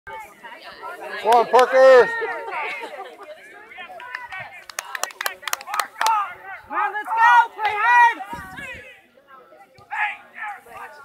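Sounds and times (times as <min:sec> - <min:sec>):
spectators clapping: 0:03.9 - 0:06.3.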